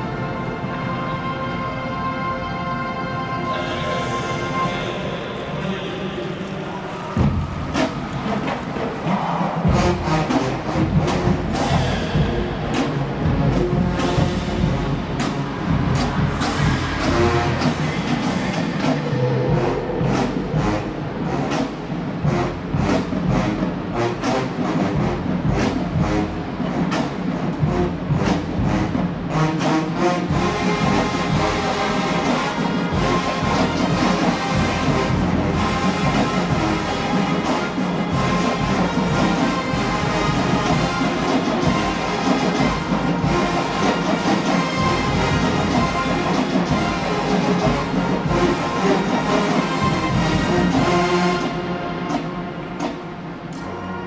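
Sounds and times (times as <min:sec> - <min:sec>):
marching band playing: 0:00.0 - 0:05.5, 0:07.2 - 0:54.0
brass section: 0:00.0 - 0:54.0.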